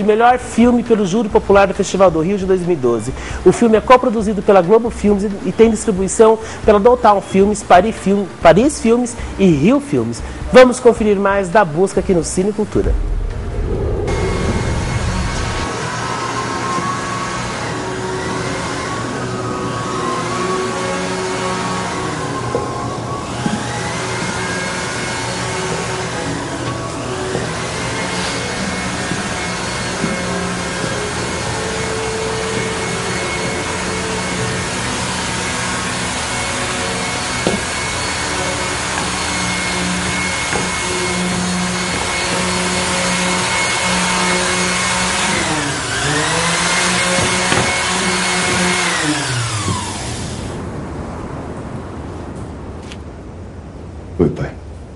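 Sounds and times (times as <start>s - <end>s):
electric woodworking power tool: 14.0s - 50.6s.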